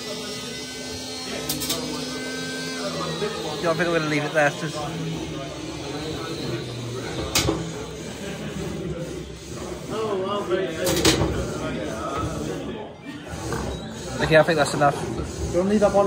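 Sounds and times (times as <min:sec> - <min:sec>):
room noise: 0:00.0 - 0:16.0.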